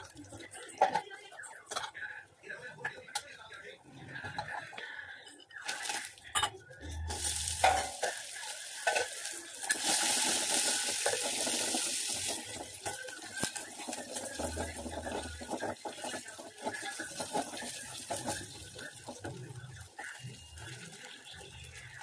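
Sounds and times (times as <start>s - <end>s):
onions sizzling in hot oil: 7.1s - 22.0s
spatula scraping a pan: 7.2s - 19.4s.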